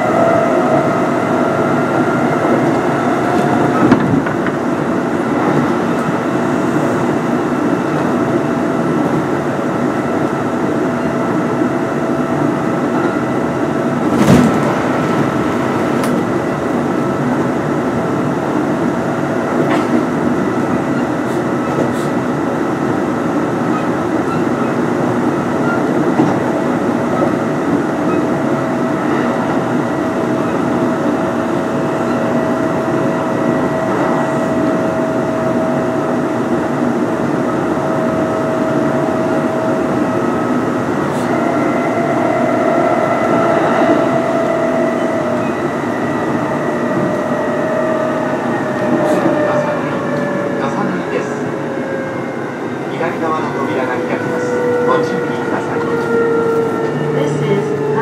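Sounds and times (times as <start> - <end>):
wheels rumbling on rail: 0.0 - 58.0.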